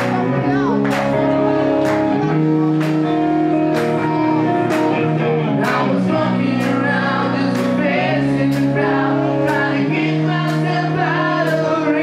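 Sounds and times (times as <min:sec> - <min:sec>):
electric guitar chords: 0:00.0 - 0:12.0
keyboard chords: 0:00.0 - 0:12.0.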